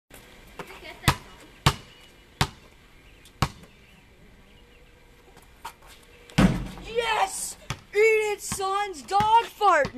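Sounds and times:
basketball bouncing on concrete: 0.6 - 2.6, 3.4 - 3.7, 6.3 - 6.9, 7.6 - 9.9
boy calling out: 6.8 - 9.9.

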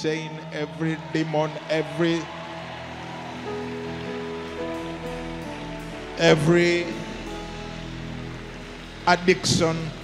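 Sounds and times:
worship band sustained chords: 0.0 - 10.0.

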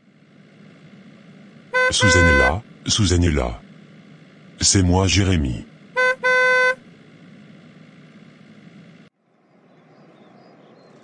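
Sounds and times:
car horn honking: 1.7 - 2.6, 6.0 - 6.8.

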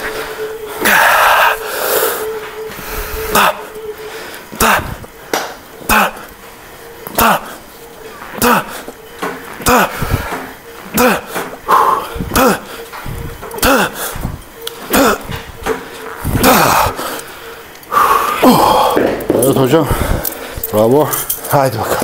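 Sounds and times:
man grunting with effort: 0.0 - 6.3, 7.0 - 7.6, 8.3 - 8.9, 9.5 - 15.5, 16.2 - 17.2, 18.0 - 20.0.

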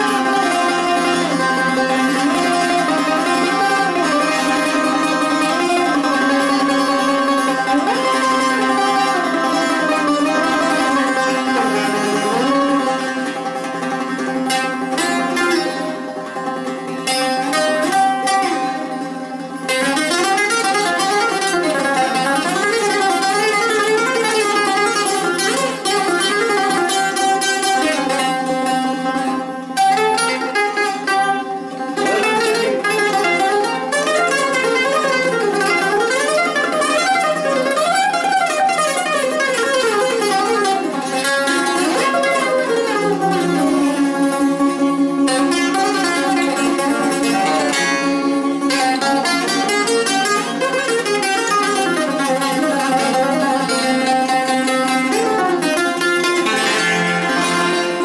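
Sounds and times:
bouzoukis playing melody: 0.0 - 58.0.

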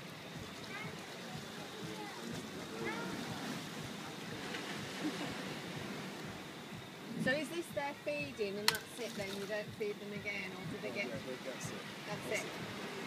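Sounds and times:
sea water washing: 0.0 - 13.0
indistinct voices talking: 6.9 - 12.9.

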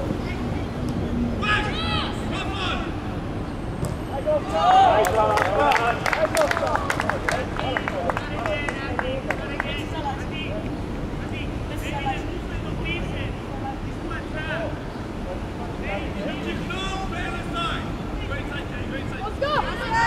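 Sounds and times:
people shouting across a pitch: 4.1 - 6.0.

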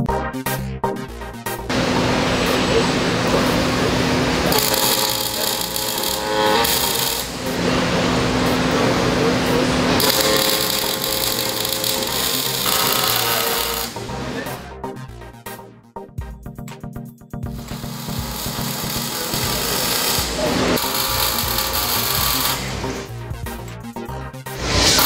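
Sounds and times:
background music: 0.0 - 25.0
welding arc crackling and buzzing: 1.7 - 14.6, 17.5 - 23.1, 24.6 - 25.0.

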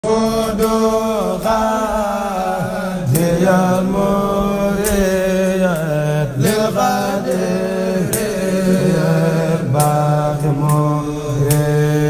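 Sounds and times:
man chanting devotional poem: 0.0 - 12.0.

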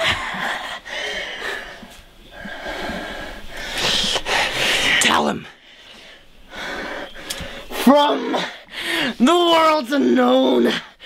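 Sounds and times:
man breathing heavily: 0.0 - 9.2.

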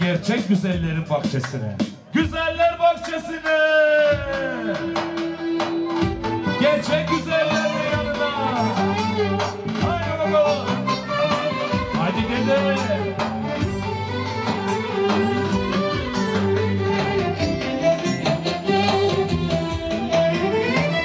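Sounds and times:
drums: 0.0 - 21.0
clarinet melody: 4.6 - 21.0
bass: 6.0 - 21.0.

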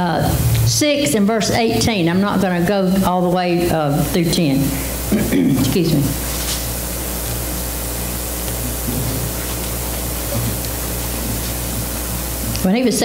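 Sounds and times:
sound system hiss and hum: 0.0 - 13.0.

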